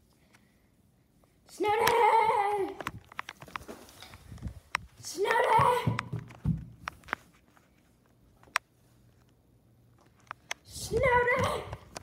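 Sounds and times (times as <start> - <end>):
footsteps on indoor stairs: 3.5 - 7.5, 10.6 - 12.0.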